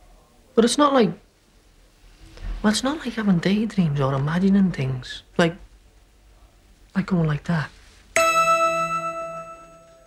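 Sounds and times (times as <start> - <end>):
bell-like chime: 8.2 - 10.0.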